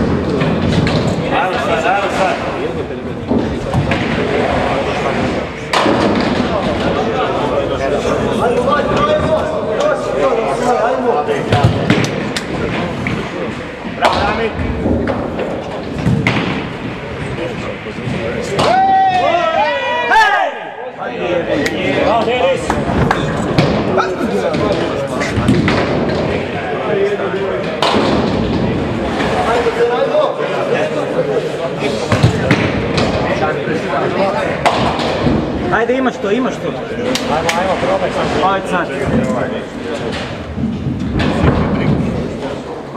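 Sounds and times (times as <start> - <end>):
bowling balls thudding on lanes: 0.0 - 9.5, 11.4 - 19.3, 22.6 - 29.7, 32.0 - 35.7, 37.3 - 42.9
chatter of voices: 0.0 - 42.9.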